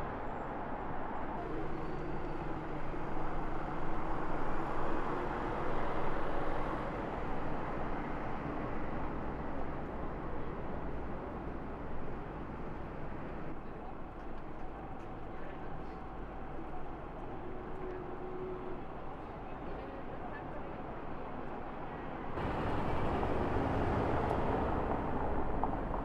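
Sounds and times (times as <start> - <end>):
street traffic rumble: 0.0 - 26.0.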